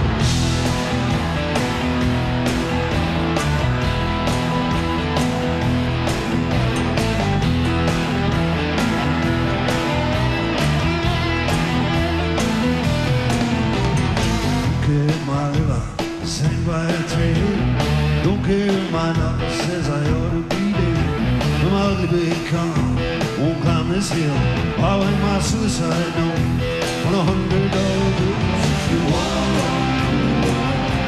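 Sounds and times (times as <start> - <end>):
bass guitar: 0.0 - 31.0
electric guitars: 0.0 - 31.0
steady drum beat: 0.0 - 31.0.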